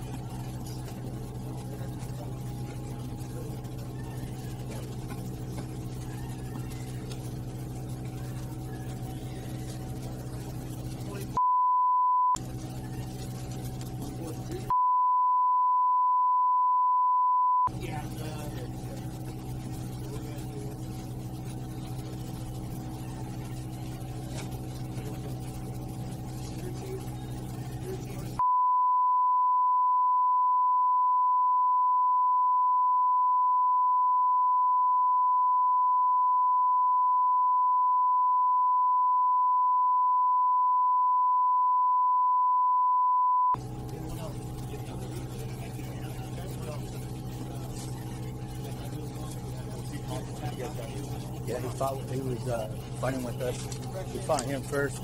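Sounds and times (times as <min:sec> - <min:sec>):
steady low hum: 0:00.0 - 0:11.4, 0:12.4 - 0:14.8, 0:17.7 - 0:28.4, 0:43.6 - 0:55.0
high-pitched censor beep: 0:11.4 - 0:12.4, 0:14.7 - 0:17.7, 0:28.4 - 0:43.6.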